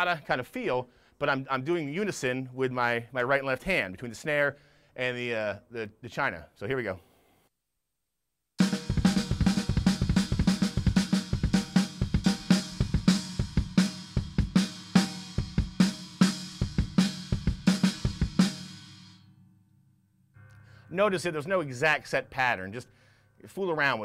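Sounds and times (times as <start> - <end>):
drum kit fill: 8.6 - 19.5.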